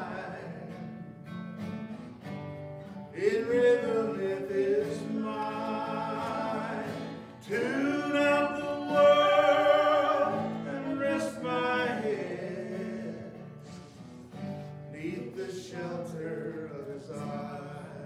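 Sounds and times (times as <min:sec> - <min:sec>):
acoustic guitar: 0:00.0 - 0:18.0
woman singing: 0:07.5 - 0:12.2.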